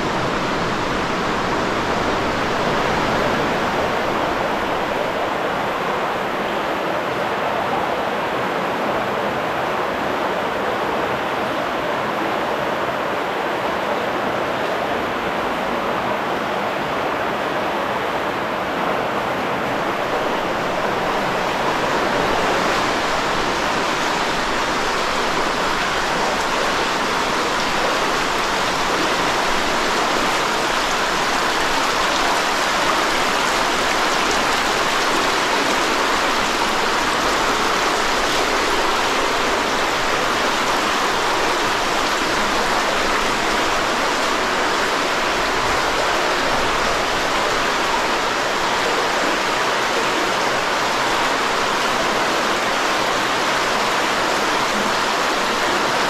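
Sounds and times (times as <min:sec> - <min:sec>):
river rushing over rocks: 0:00.0 - 0:56.0.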